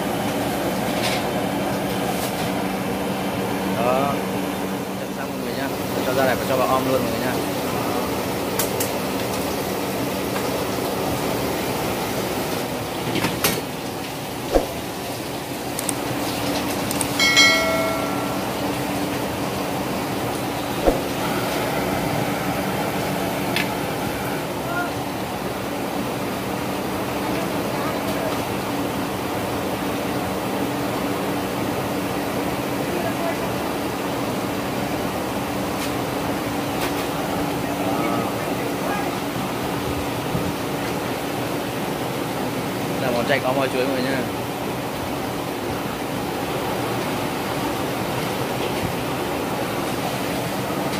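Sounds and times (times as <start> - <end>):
gas stove burner roaring: 0.0 - 32.8
metal clinks: 17.2 - 18.8
ringing metallic tone: 17.2 - 19.0.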